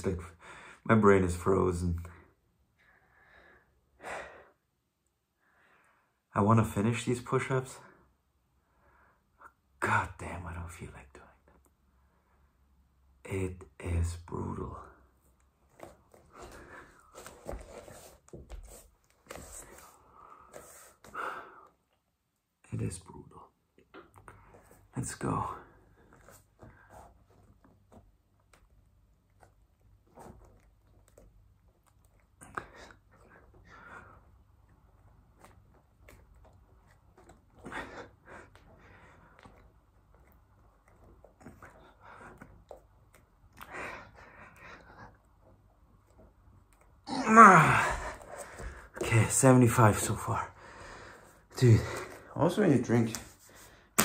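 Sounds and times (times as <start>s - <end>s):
man breathing hard: 50.6s - 51.4s.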